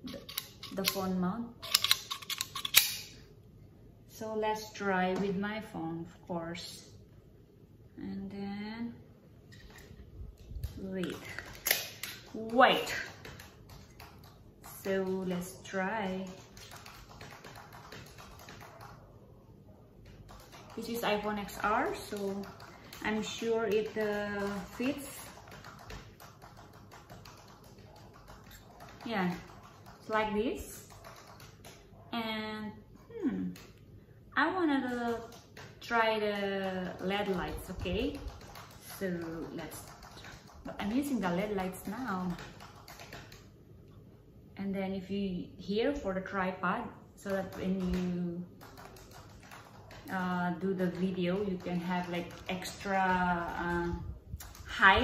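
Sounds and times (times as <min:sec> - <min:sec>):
sharp clicks and clacks: 0:10.6 - 0:19.1, 0:20.0 - 0:31.9, 0:34.7 - 0:43.5, 0:47.2 - 0:53.6.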